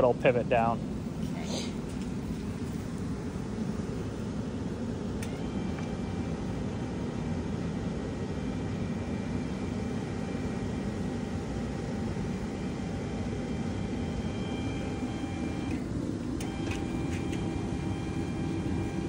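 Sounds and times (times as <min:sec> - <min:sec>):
electric winch motor whining: 0:05.2 - 0:06.5, 0:12.4 - 0:19.0.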